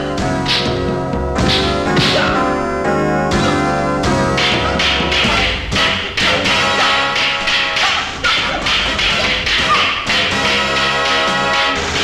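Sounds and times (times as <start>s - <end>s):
dramatic background score: 0.0s - 12.0s
stick swishing: 0.4s - 2.5s, 4.4s - 10.1s
hit sounds: 0.4s - 2.6s, 3.3s - 12.0s.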